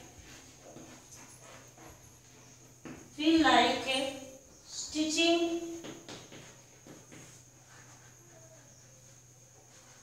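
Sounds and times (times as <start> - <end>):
chalk taps: 5.8 - 8.7.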